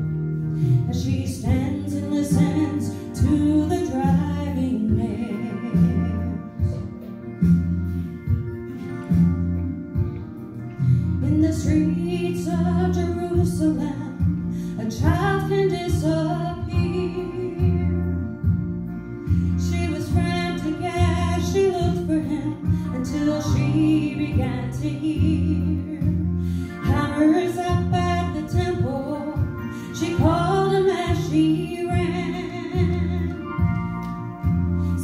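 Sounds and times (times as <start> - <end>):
instrumental accompaniment: 0.0 - 35.0
steady bass line: 0.0 - 35.0
woman singing gospel: 0.8 - 6.7, 11.2 - 18.1, 19.5 - 33.8.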